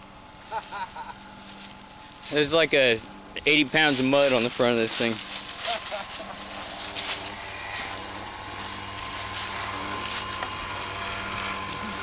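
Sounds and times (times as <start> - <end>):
steady low hum: 0.0 - 12.0
footsteps crunching dry leaves: 0.2 - 12.0.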